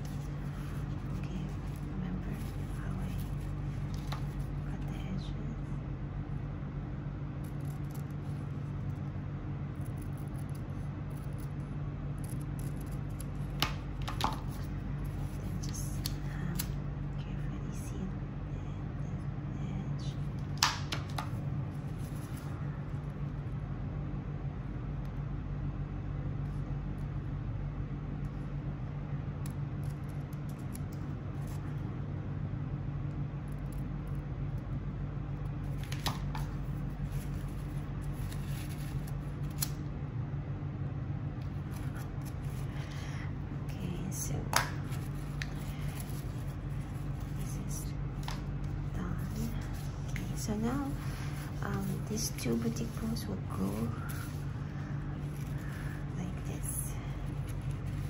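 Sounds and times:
low hum: 0.0 - 58.0.

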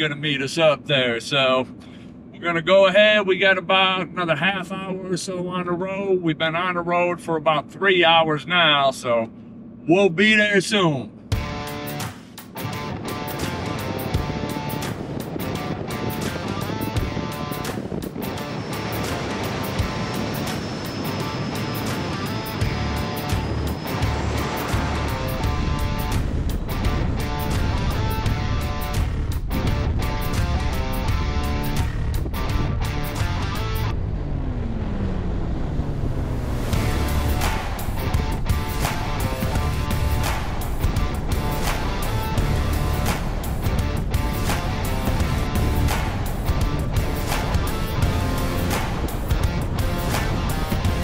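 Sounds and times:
heavy bass beat: 11.3 - 14.8, 22.1 - 33.9, 36.7 - 51.0
background music: 11.3 - 34.0, 36.6 - 51.0.

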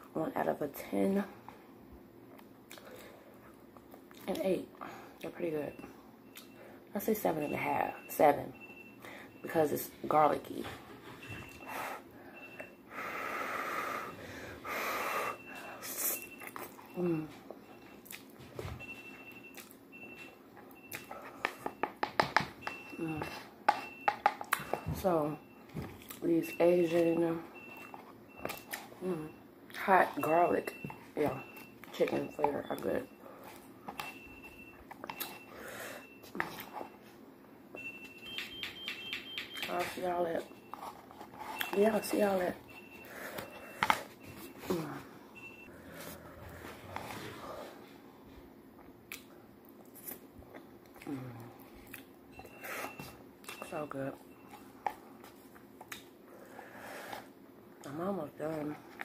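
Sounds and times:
alarm system beeping: 7.2 - 9.9, 22.6 - 37.1, 37.8 - 46.9.

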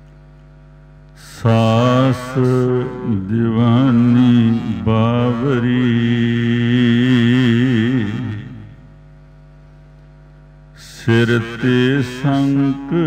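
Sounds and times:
man chanting melodically: 1.2 - 8.9, 10.8 - 13.0
steady drone: 1.2 - 9.0, 10.7 - 13.0.

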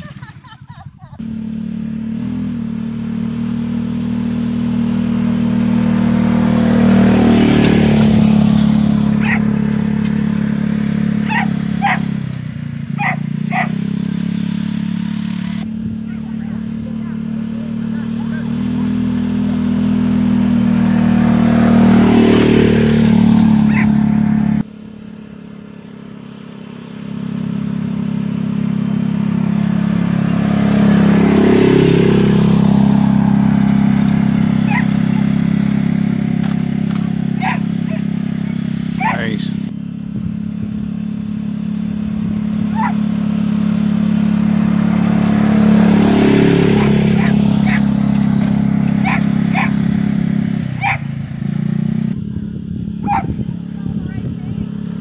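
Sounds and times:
vehicle engine droning: 0.0 - 55.0.

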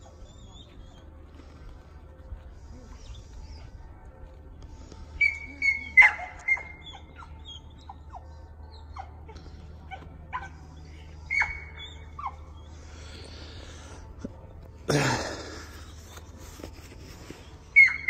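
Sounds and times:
small birds chirping: 2.5 - 13.9
dog barking: 5.2 - 7.3.

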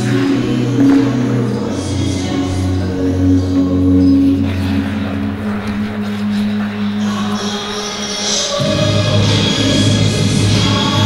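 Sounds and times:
music holding low chord: 0.0 - 11.0.

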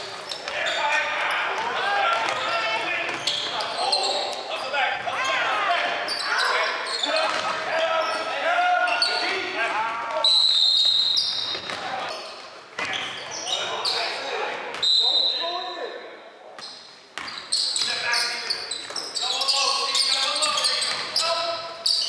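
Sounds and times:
sneakers squeaking: 0.0 - 15.8, 16.5 - 22.0.

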